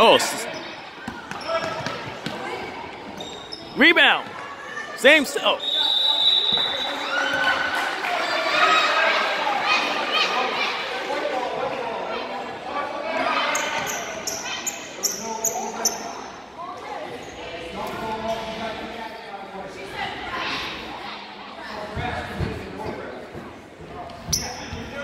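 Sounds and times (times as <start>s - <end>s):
voices echoing in gym: 0.0s - 25.0s
sneaker squeaks on hardwood: 1.1s - 2.0s, 3.1s - 3.8s.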